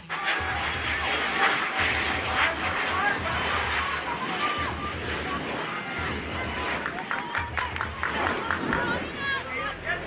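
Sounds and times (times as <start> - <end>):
pulsing low rumble: 0.0 - 10.0
steady rushing noise: 0.0 - 10.0.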